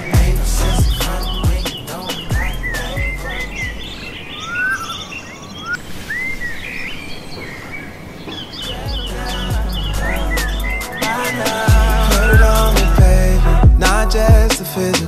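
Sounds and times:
r and b song: 0.0s - 4.4s, 8.5s - 15.0s
birds chirping: 0.0s - 15.0s.

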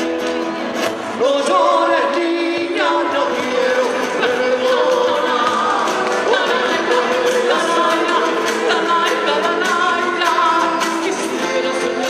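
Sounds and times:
live band playing: 0.0s - 12.0s
woman singing: 1.2s - 12.0s.

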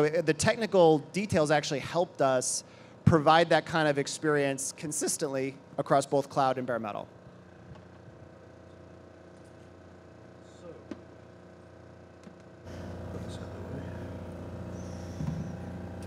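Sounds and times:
steady low hum: 0.0s - 16.0s
room noise: 12.1s - 16.0s.

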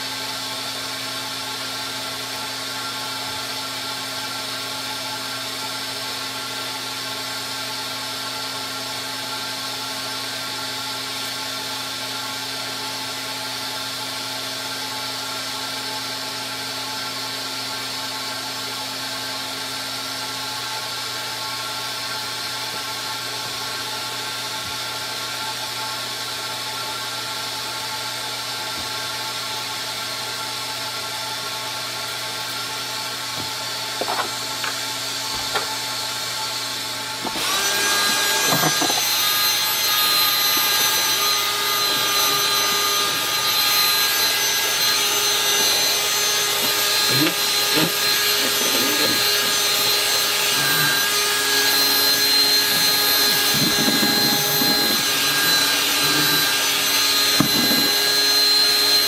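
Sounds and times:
carpet cleaner motor humming: 17.9s - 59.0s.

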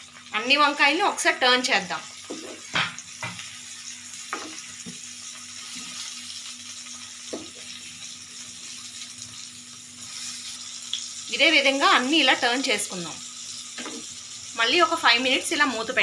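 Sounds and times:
vegetables sizzling in oil: 0.0s - 16.0s.

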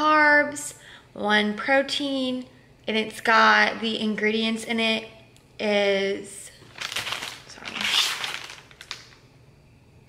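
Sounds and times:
plastic packet crinkling: 6.6s - 9.2s.

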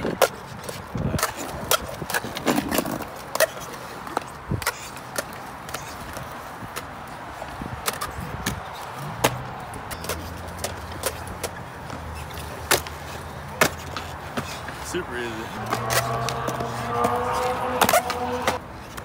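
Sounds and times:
skateboard clacking on ground: 0.0s - 19.0s
skateboard wheels rolling on concrete: 0.0s - 19.0s.

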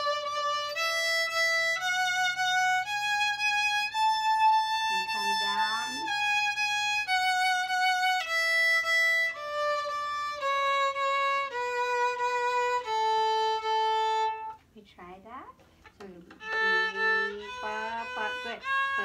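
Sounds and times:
violin playing scale: 0.0s - 14.6s, 16.3s - 19.0s.

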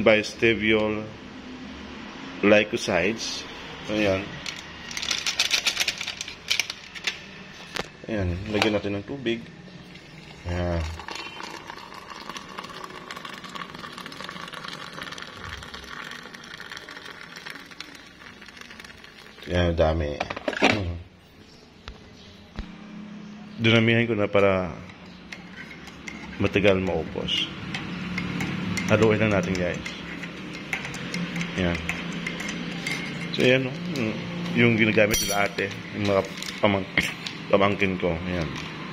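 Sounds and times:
coffee splashing and frothing: 9.8s - 19.8s, 25.3s - 33.4s
hot water pouring into mug: 9.9s - 19.8s
spoon stirring in ceramic mug: 10.2s - 19.4s, 24.8s - 33.9s.

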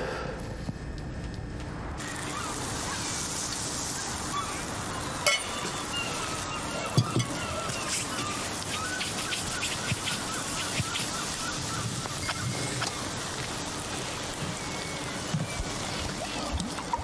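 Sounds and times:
steady hiss: 0.0s - 17.0s
small birds chirping: 2.0s - 16.6s.

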